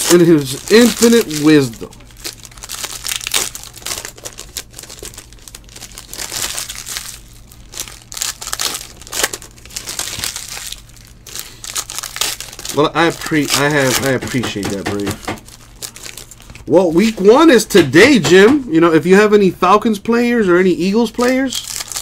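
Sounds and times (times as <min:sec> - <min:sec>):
foil wrapper crinkling and tearing: 0:00.0 - 0:17.6, 0:20.8 - 0:22.0.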